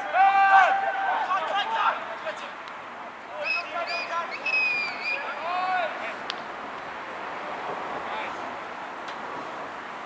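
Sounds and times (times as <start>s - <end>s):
players shouting: 0.0s - 6.2s
steady outdoor hiss: 0.0s - 10.0s.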